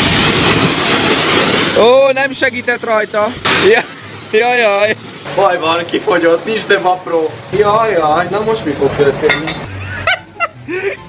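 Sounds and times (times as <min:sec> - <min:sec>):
pressure washer spraying water: 0:00.0 - 0:09.2.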